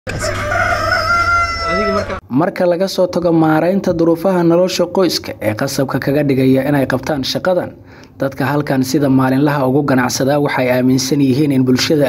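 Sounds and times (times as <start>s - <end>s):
rooster crowing: 0.1s - 2.2s.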